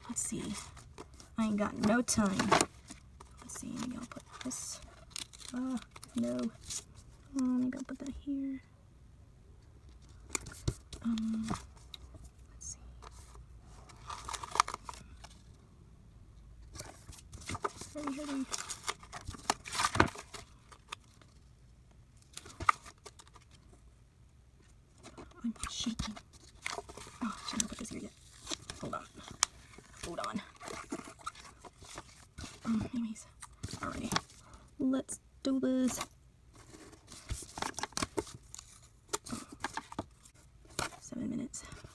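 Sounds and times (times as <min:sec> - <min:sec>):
paper rustling: 0:13.1 - 0:15.5, 0:16.7 - 0:21.4, 0:25.0 - 0:33.0, 0:35.8 - 0:41.0.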